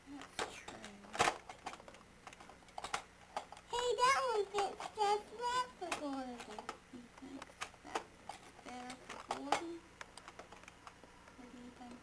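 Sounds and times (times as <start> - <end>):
child's voice: 0.1 - 1.2, 3.7 - 8.0, 8.6 - 9.9
toy trains clicking: 0.2 - 11.0.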